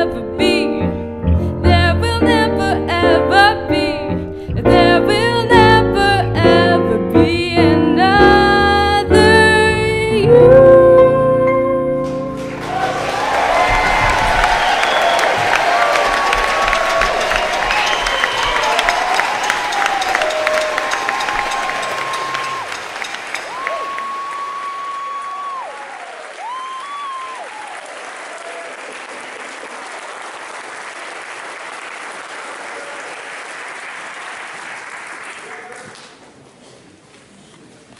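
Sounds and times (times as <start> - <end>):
audience applauding and cheering: 12.0 - 36.2
crowd calling out: 12.5 - 28.7.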